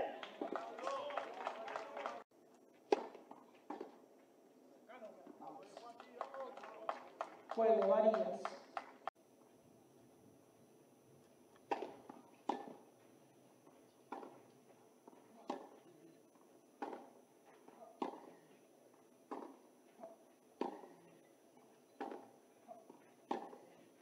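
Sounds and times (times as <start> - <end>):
racquets hitting tennis ball: 2.9 - 4.0, 11.6 - 12.9, 14.1 - 15.9, 16.8 - 18.5, 19.2 - 21.2, 22.0 - 24.0.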